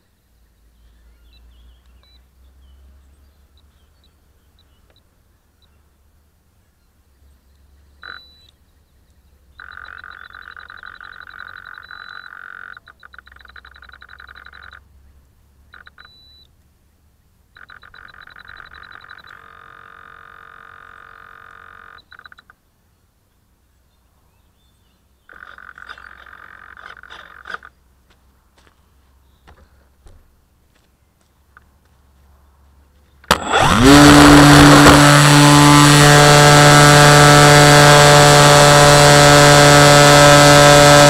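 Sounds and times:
frogs trilling: 8.0s - 8.5s, 9.5s - 14.9s, 15.7s - 16.4s, 17.5s - 22.6s, 25.2s - 27.8s.

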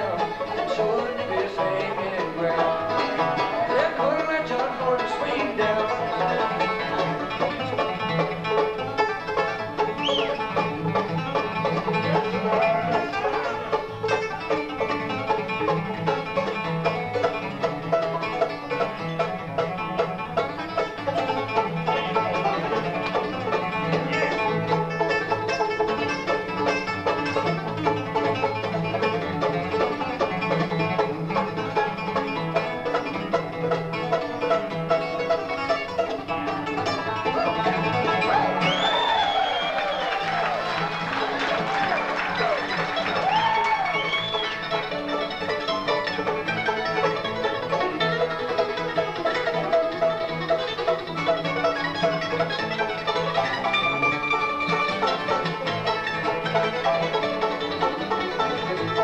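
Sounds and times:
acoustic guitar: 0.0s - 59.0s
banjo: 0.0s - 59.0s
fiddle: 0.0s - 59.0s
mandolin: 0.0s - 59.0s
upright bass: 0.0s - 59.0s.

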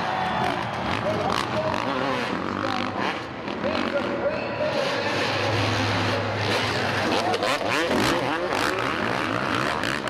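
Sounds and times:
arena crowd noise: 0.0s - 10.0s
motorcycle engines revving: 0.0s - 10.0s.

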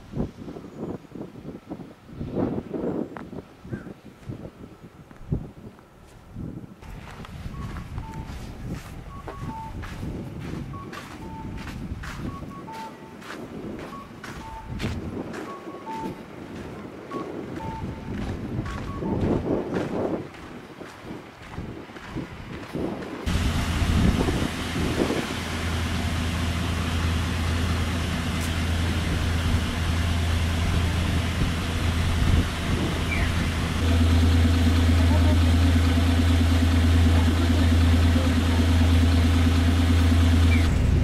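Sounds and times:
bus engine running: 5.4s - 41.0s.

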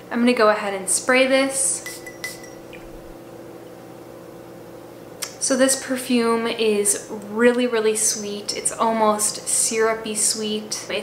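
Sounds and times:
steady low hum: 0.0s - 11.0s
glass bottle and cap clinking: 1.8s - 2.8s.

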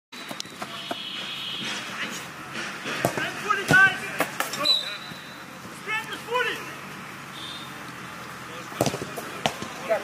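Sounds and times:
players shouting calls: 0.2s - 10.0s
football being kicked: 2.9s - 4.5s, 8.8s - 9.8s.

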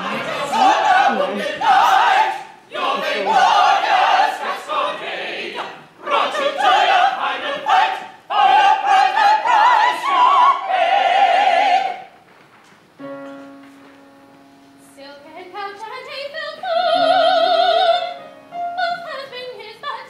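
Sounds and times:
cast singing operatically: 0.0s - 12.0s.

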